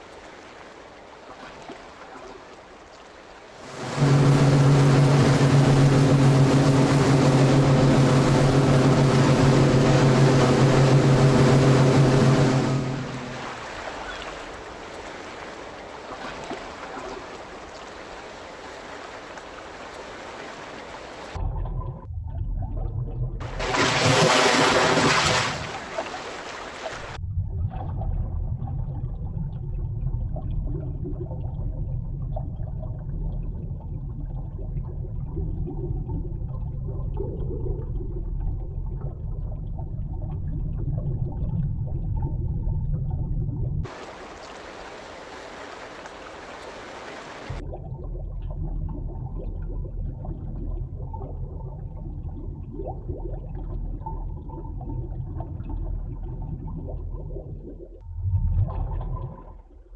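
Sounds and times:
bright rushing water hiss: 3.5s - 16.2s, 17.5s - 21.4s, 43.9s - 47.6s
deep underwater rumble: 3.6s - 14.3s, 21.4s - 24.1s, 27.0s - 43.9s, 47.5s - 59.9s.

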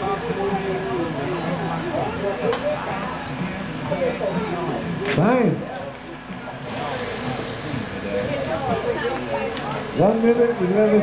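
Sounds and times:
people talking in background: 0.0s - 11.0s.

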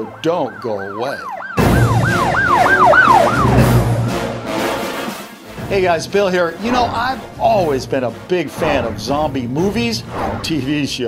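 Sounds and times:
siren wailing: 0.0s - 5.0s
loud music hit: 1.6s - 10.3s.

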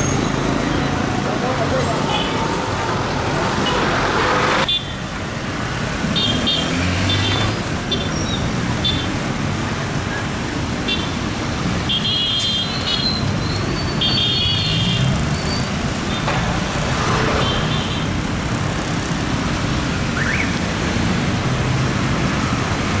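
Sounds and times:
street traffic rumble: 0.0s - 23.0s.

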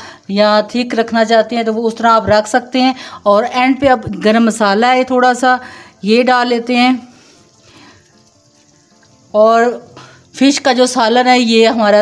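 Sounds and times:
curry simmering with soft bubbling: 0.0s - 12.0s.

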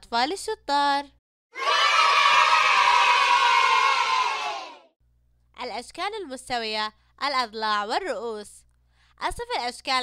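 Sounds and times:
children cheering: 1.6s - 4.9s.

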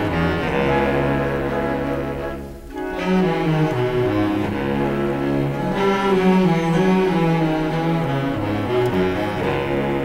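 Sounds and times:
orchestral bowed strings low notes: 0.0s - 10.0s.

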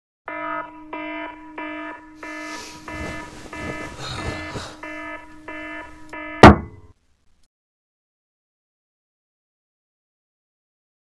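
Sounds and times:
alarm clock beeping: 0.3s - 7.0s
hand slamming on clock: 6.4s - 6.8s.

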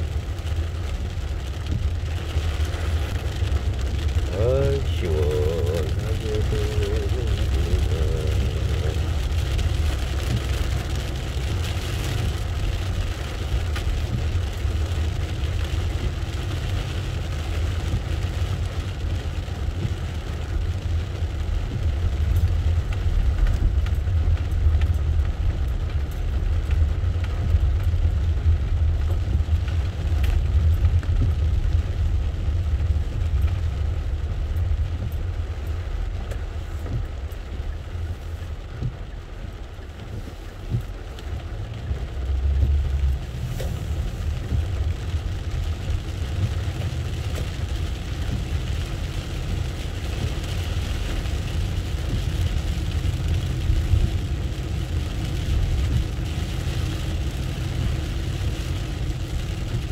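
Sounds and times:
car engine and tyres on wet road: 0.0s - 59.9s
rain striking windshield: 0.0s - 59.9s.

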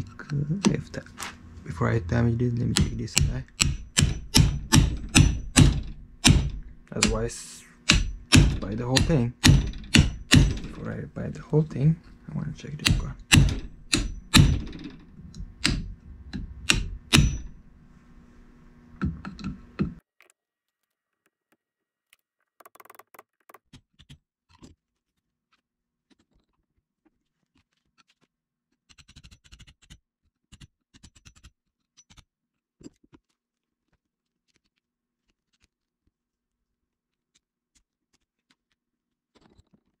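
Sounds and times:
low hum: 0.0s - 20.0s
screwdriver knocking on metal clamp: 2.4s - 17.8s
faint clicks and rustles of parts: 2.6s - 40.0s.

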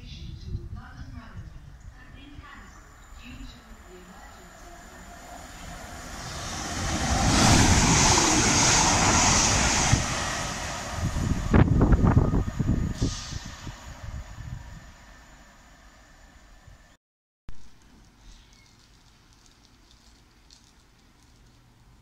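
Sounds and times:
train passing at speed: 2.0s - 16.9s.

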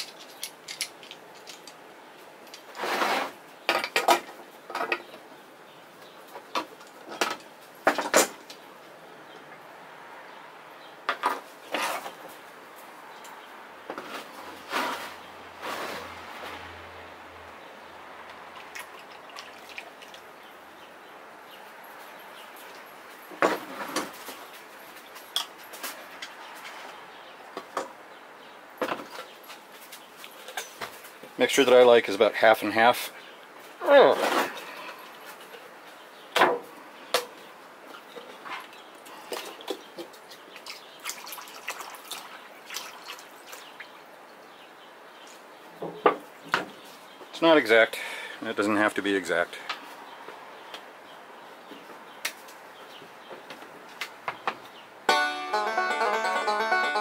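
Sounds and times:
pliers and tin cans clinking: 0.0s - 1.8s.

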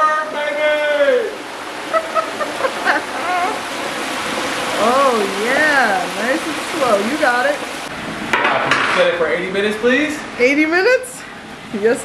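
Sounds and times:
hot oil bubbling and sizzling: 0.0s - 12.0s.

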